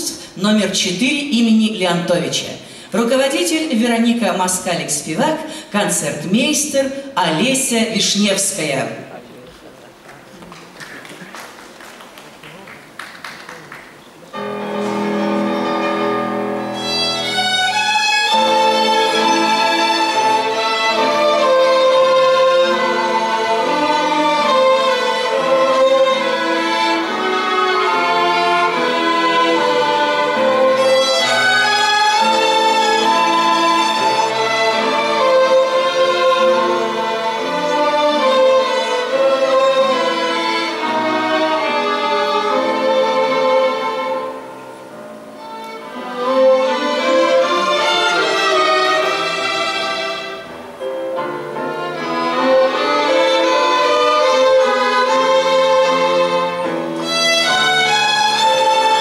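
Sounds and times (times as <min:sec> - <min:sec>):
violin ensemble playing: 0:00.0 - 0:10.6, 0:13.6 - 0:59.0
piano accompaniment: 0:12.0 - 0:59.0.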